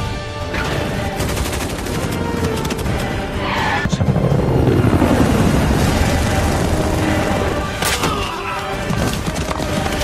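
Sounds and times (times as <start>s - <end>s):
film score music: 0.0s - 10.0s
rapid automatic gunfire: 1.1s - 3.2s.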